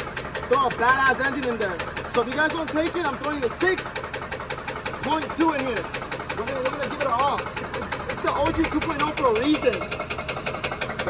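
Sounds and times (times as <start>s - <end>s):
engine idling with rapid knock: 0.0s - 11.0s.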